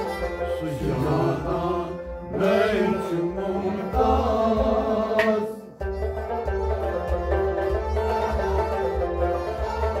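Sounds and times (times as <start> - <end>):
harmonium chords: 0.0 - 10.0.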